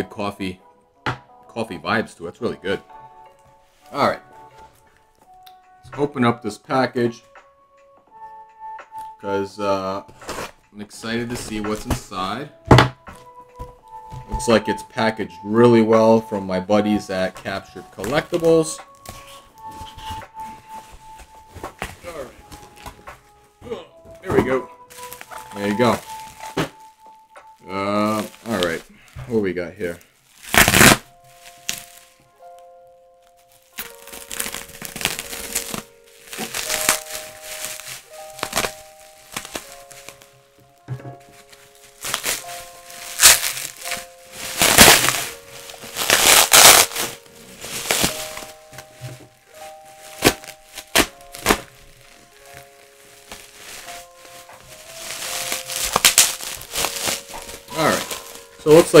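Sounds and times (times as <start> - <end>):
background music: 0.0 - 59.0
bubble wrap crinkling and tearing: 10.1 - 12.3, 17.1 - 23.6, 24.8 - 59.0.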